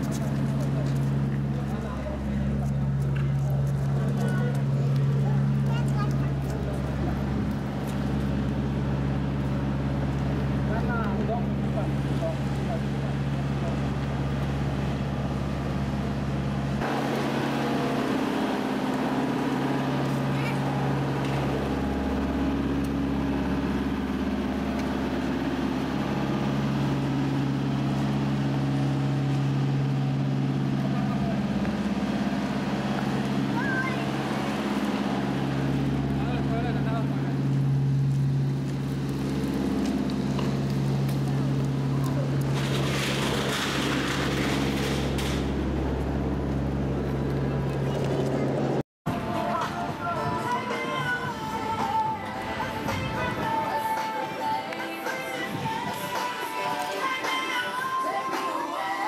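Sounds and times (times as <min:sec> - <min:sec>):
faint voices: 0:00.0 - 0:07.8
low mechanical hum: 0:00.0 - 0:58.0.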